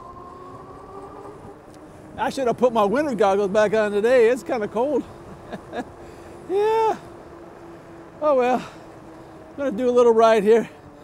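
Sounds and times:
road and wind rumble: 0.0 - 11.0.

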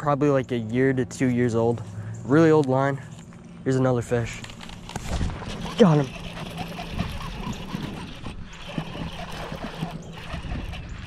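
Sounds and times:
fishing reel gears cranking: 4.5 - 11.0
reel ticking: 4.5 - 11.0.

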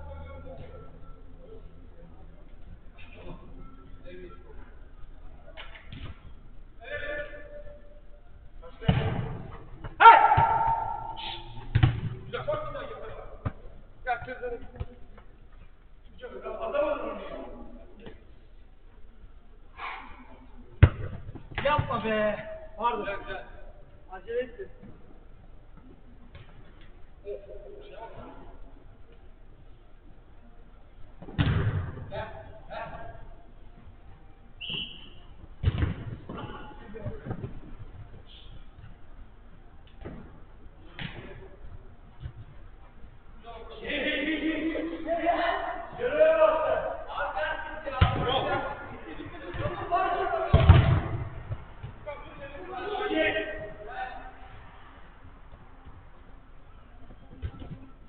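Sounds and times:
football kicks and ball thuds: 8.8 - 10.9, 11.7 - 12.8, 20.8 - 22.0, 31.2 - 32.1, 35.6 - 38.1, 40.9 - 41.5, 48.0 - 48.7, 49.4 - 49.8, 50.5 - 52.1
players calling out: 9.9 - 11.8
football kicked hard: 31.3 - 32.0, 35.6 - 36.4, 50.5 - 51.9.

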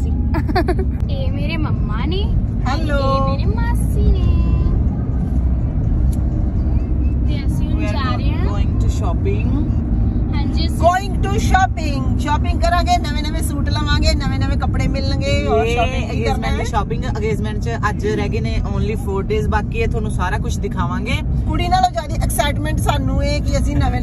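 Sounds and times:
people talking: 0.0 - 4.8, 10.4 - 24.0
car road and engine rumble: 0.0 - 24.0.

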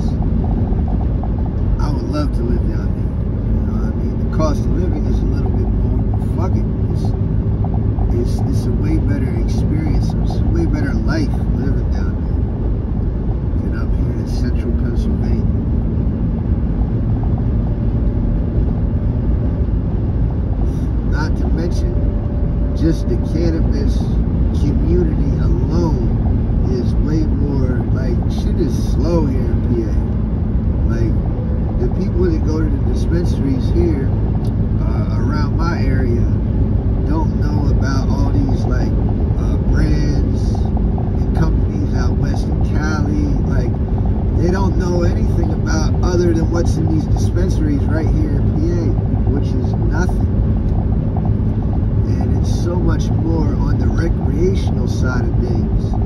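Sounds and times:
car road and engine noise: 0.0 - 56.0
person speaking: 37.0 - 50.2.

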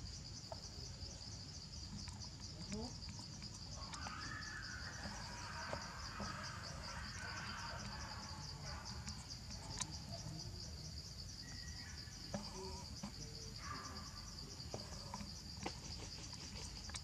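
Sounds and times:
insect chorus trilling: 0.0 - 17.0.

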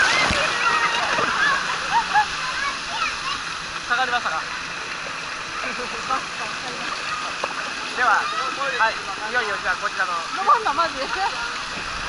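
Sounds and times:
children shouting and squealing: 0.0 - 3.7
water spraying and splashing: 0.0 - 12.0.

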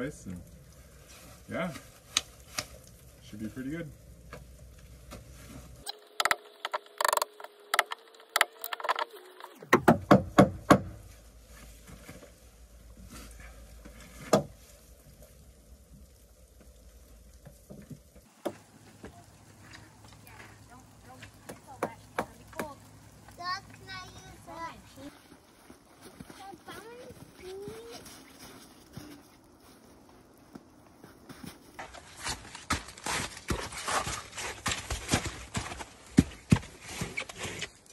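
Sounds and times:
knocks on timber joists: 9.7 - 11.0, 14.2 - 14.6.

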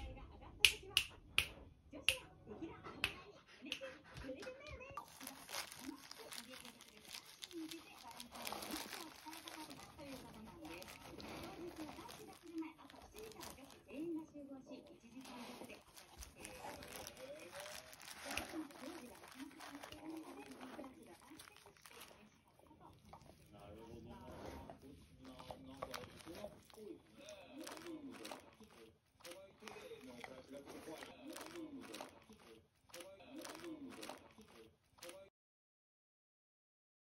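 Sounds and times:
plastic wrap crinkling: 5.0 - 23.4, 25.2 - 35.3.

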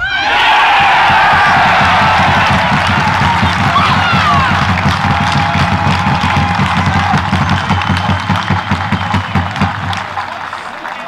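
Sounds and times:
spectators cheering and clapping: 0.0 - 11.0.

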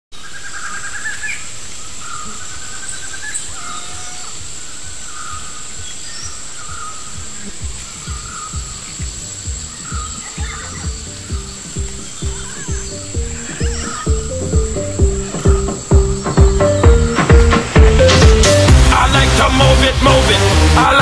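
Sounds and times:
bird chirps and trills: 0.2 - 18.6
insect drone: 0.2 - 19.6
kick drum beat: 6.6 - 19.8.

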